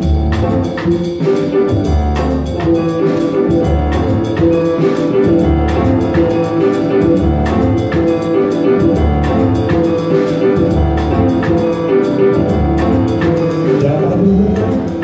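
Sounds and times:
bass notes: 0.0s - 15.0s
small jazz band playing: 0.0s - 15.0s.

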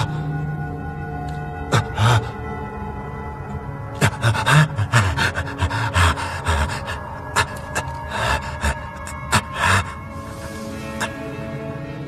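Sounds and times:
background music: 0.0s - 12.0s
man gasping and laughing: 1.7s - 2.5s, 3.9s - 10.2s.

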